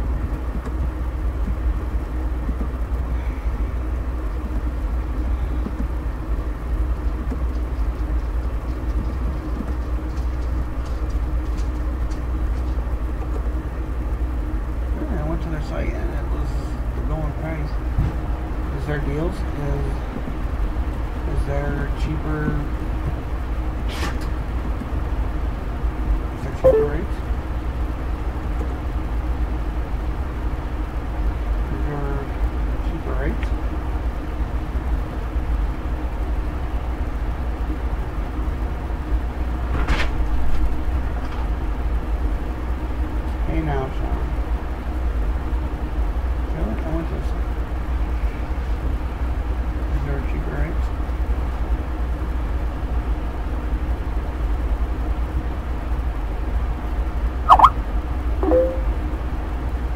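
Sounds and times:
low rumble and hiss: 0.0s - 59.9s.

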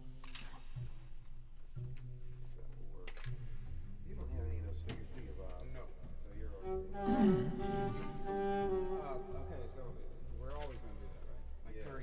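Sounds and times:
instruments holding low notes: 0.8s - 12.0s
murmur of voices: 2.8s - 12.0s.

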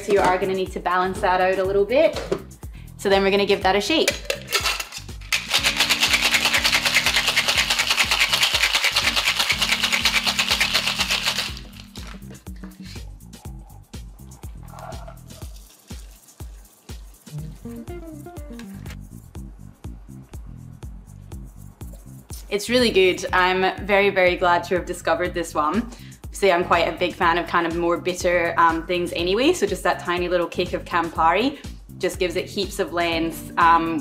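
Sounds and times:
background music: 0.0s - 34.0s
ice rattling in cocktail shaker: 4.1s - 12.3s, 14.6s - 17.4s.

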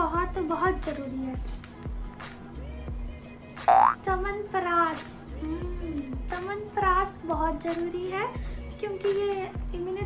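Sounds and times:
background music: 0.0s - 10.0s
cartoon boing rising in pitch: 3.7s - 4.0s.

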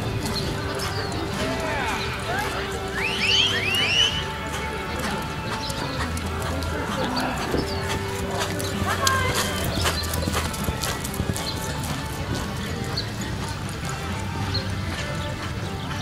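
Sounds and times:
background music: 0.0s - 16.0s
horse hoofbeats on dirt: 0.0s - 16.0s
voices: 0.0s - 16.0s.

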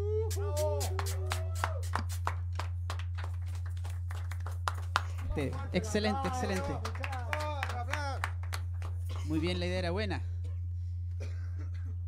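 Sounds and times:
steady low hum: 0.0s - 12.0s
people clapping: 0.3s - 9.6s.

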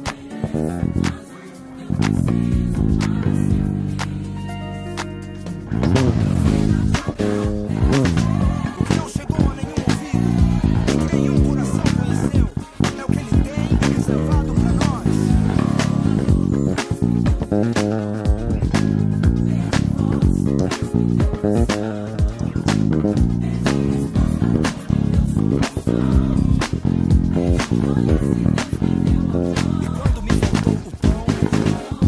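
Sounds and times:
bass guitar plucked with fingers: 0.0s - 1.2s, 1.8s - 32.0s.

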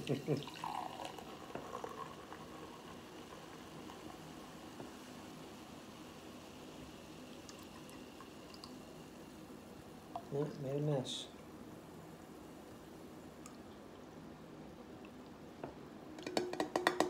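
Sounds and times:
liquid pouring into glass: 0.0s - 5.0s, 7.3s - 9.2s, 10.1s - 10.6s.

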